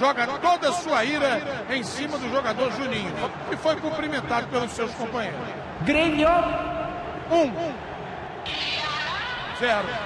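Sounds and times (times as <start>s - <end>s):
commentator's voice: 5.8s - 7.6s.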